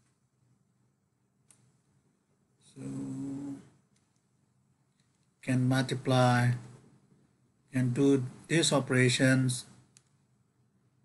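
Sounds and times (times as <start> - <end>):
man saying drawn-out filler: 2.8 - 3.6.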